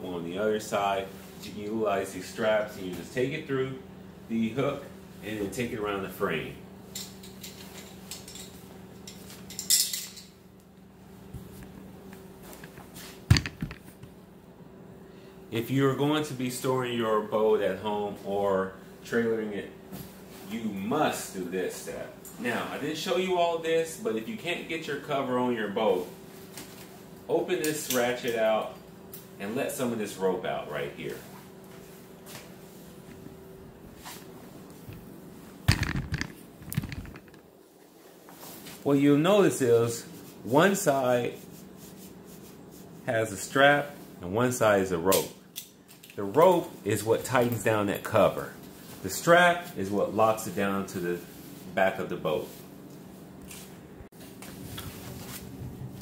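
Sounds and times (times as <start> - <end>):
steady low hum: 0.0 - 56.0
handling rustling and knocks: 6.8 - 10.4, 11.2 - 14.2, 31.3 - 37.6
metal strap buckle clinking: 6.9 - 10.3.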